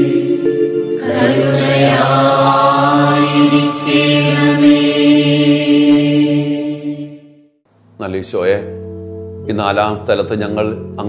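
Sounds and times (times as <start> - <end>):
voices singing devotional song: 0.0 - 7.4
sustained backing chords: 0.0 - 11.0.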